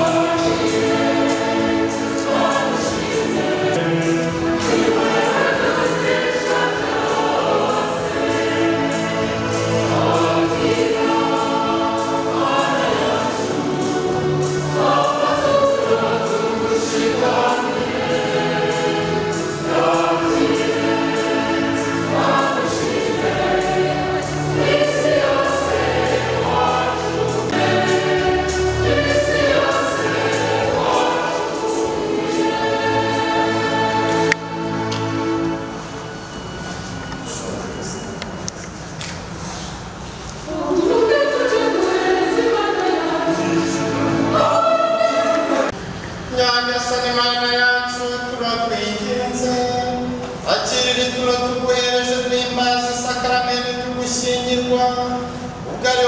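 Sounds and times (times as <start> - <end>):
choir singing a hymn: 0.0 - 38.2, 39.4 - 56.0.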